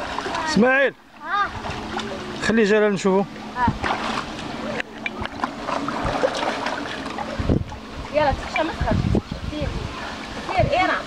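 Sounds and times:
water splashing and sloshing: 0.0s - 11.0s
wind buffeting microphone: 3.6s - 11.0s.

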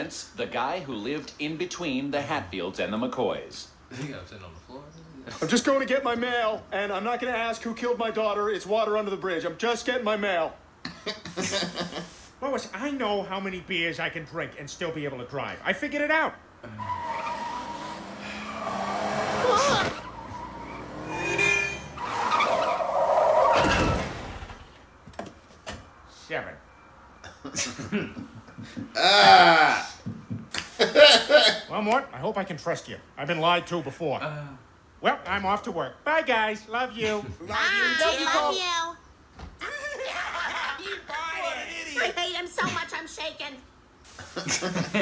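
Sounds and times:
men laughing: 10.8s - 12.2s, 27.4s - 30.0s, 30.6s - 31.7s, 37.0s - 37.6s, 39.6s - 41.1s, 44.3s - 45.0s
cartoon car driving: 16.6s - 24.8s
tyres screeching: 16.6s - 24.9s.

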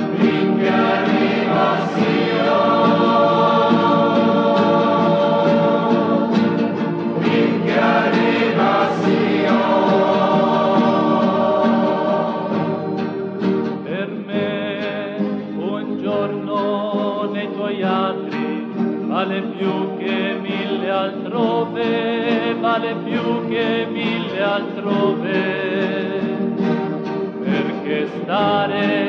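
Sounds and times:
choir singing: 0.0s - 26.7s, 27.4s - 29.0s.

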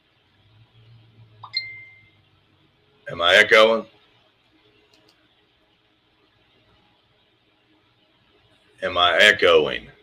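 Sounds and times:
faint low hum: 0.0s - 10.0s
clear ding: 1.4s - 2.1s.

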